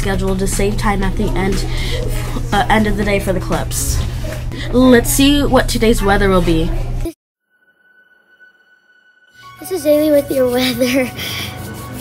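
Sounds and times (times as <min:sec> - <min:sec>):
speech: 0:00.0 - 0:07.1
high-pitched sonar-like tone: 0:07.4 - 0:09.6.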